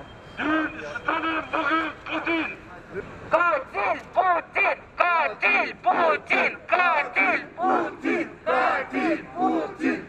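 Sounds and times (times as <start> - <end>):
crowd chanting in unison: 5.4 - 10.0.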